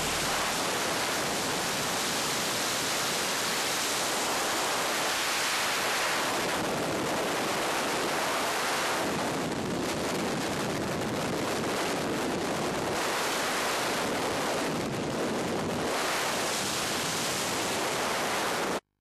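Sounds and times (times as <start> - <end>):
freefall wind roar on microphone: 0.0 - 18.8.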